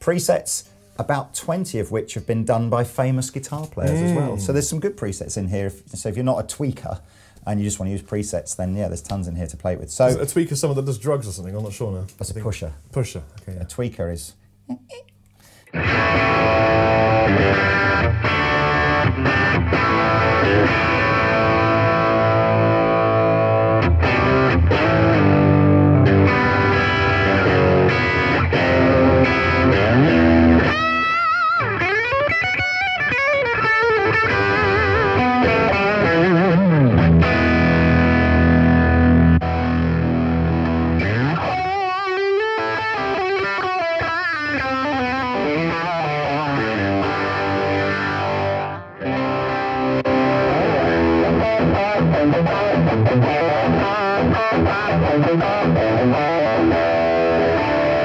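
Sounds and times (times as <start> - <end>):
electric guitar with heavy effects: 15.5 - 58.0.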